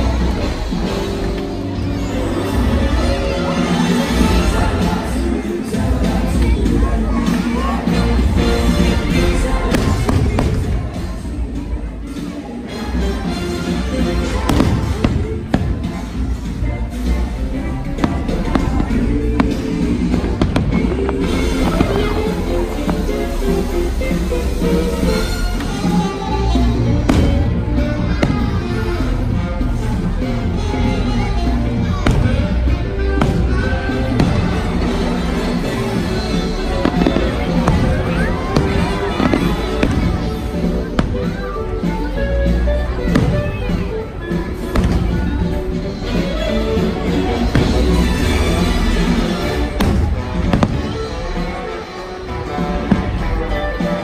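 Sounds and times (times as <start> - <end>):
show music: 0.0 - 54.0
fireworks bangs: 14.3 - 16.6, 17.8 - 23.5, 32.0 - 46.2, 46.8 - 51.5.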